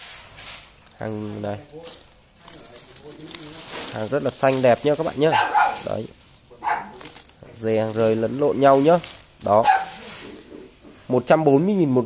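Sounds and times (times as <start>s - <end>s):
faint rustling of dry canes: 0.0s - 12.0s.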